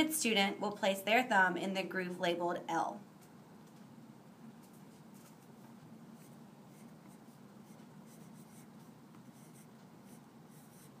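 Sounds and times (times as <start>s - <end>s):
low room hum: 0.0s - 11.0s
pencil scratching on paper: 6.2s - 11.0s.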